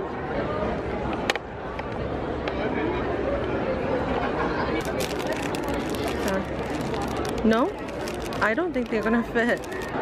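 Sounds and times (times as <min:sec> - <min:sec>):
murmur of crowd chatter: 0:00.0 - 0:10.0.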